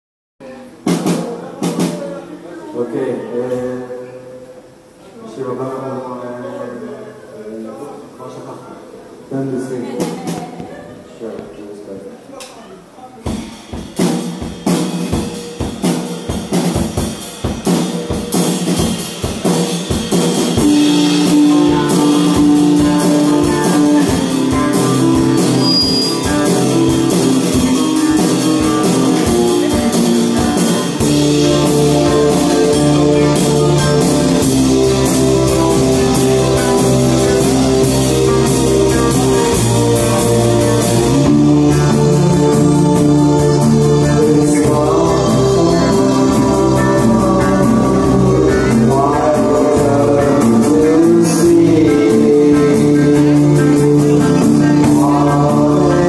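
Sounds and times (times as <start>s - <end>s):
live rock band playing: 0.7s - 2.4s, 12.8s - 56.0s
drum hits with cymbal crashes: 13.2s - 48.9s.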